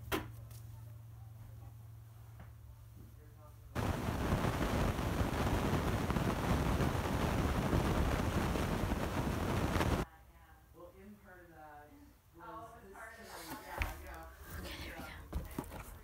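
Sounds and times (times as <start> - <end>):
loud steady rushing noise: 3.8 - 10.0.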